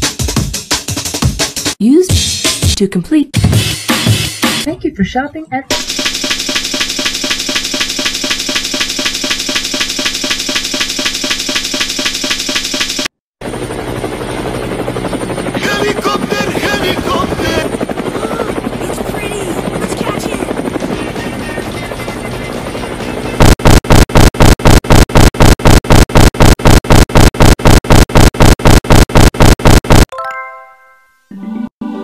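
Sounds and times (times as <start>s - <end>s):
loud stuttering audio loop: 5.7s - 13.1s, 22.6s - 30.1s
cartoon helicopter rotor noise: 5.7s - 30.1s.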